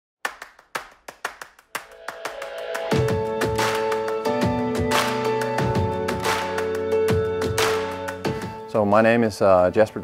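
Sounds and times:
rhythmic clap percussion: 0.2 - 8.6.

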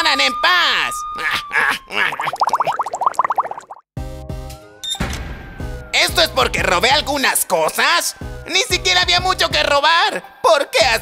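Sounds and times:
cartoon bubbling plops: 1.9 - 3.9.

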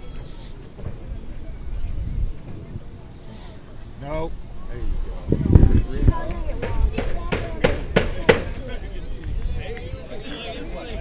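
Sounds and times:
faint crowd chatter: 0.0 - 11.0
sharp knocks: 6.6 - 8.7.

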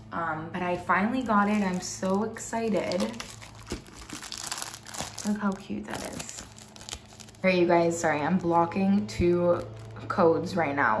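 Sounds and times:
plastic sleeve crinkling: 1.0 - 10.1.

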